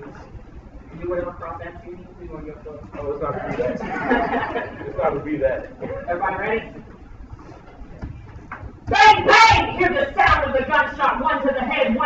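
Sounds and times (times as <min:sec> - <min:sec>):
man speaking loudly: 0:08.9 - 0:12.0.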